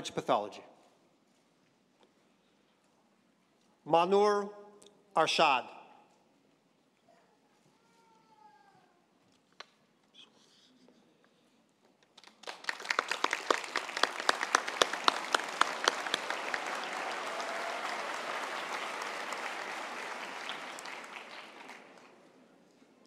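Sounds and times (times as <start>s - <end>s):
crowd applauding: 12.2s - 22.3s.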